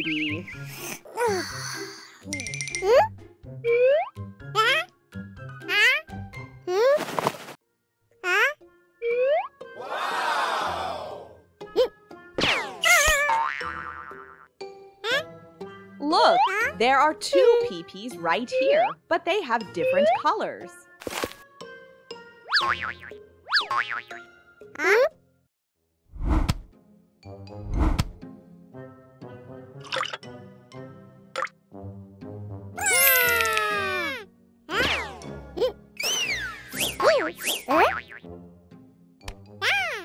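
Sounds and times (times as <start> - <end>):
light cartoon background music: 0.0 - 40.0
children's music: 0.3 - 6.9, 14.7 - 22.4
small plopping sound effects: 3.7 - 4.2, 9.0 - 9.6, 31.4 - 31.6
cartoon boing: 12.5 - 14.4
cartoon sound effect sliding down: 32.8 - 35.3
cartoon swoop: 32.8 - 37.9.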